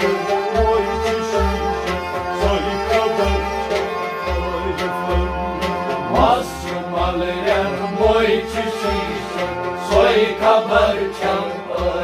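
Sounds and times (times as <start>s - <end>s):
man singing: 0.0s - 1.6s, 2.3s - 12.0s
bowed sarangi: 0.0s - 6.7s
harmonium drone: 0.0s - 12.0s
plucked rabab: 0.0s - 12.0s.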